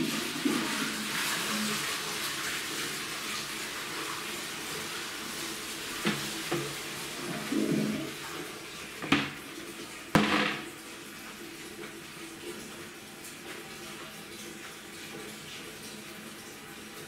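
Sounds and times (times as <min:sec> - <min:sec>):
toilet flushing: 0:00.0 - 0:17.0
sharp knocks: 0:10.2 - 0:10.7.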